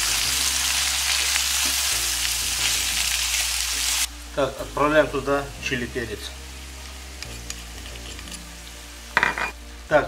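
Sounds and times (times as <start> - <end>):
food sizzling in a pan: 0.0 - 10.0.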